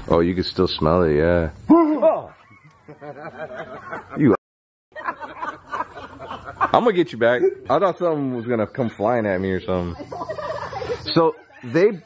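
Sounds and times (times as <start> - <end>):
person laughing: 9.8 - 12.0.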